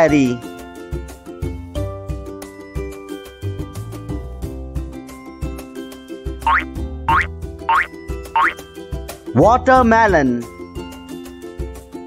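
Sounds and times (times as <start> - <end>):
bouncy children's music: 0.0 - 12.0
boing sound effects: 6.5 - 8.6.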